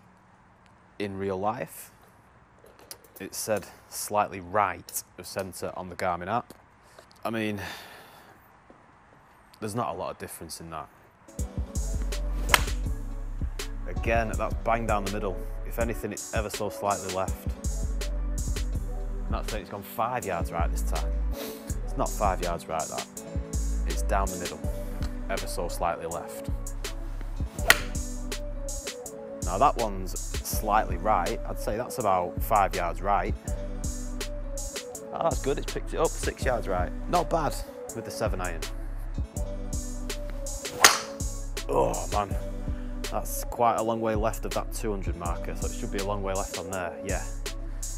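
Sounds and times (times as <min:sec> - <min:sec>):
background music with bass: 0:11.3 - 0:43.6, 0:44.2 - 0:47.9
golf club striking ball: 0:12.4 - 0:12.9, 0:27.6 - 0:28.1, 0:40.7 - 0:41.3.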